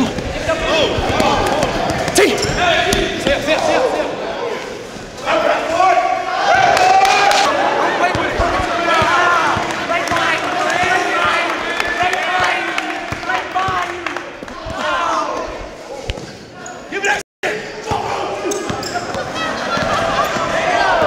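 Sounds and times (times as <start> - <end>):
chatter of spectators: 0.0 - 21.0.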